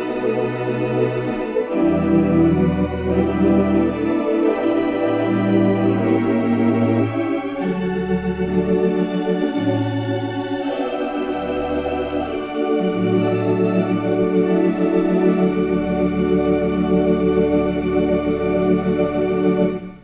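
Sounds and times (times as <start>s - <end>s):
organ playing a hymn: 0.0s - 20.0s.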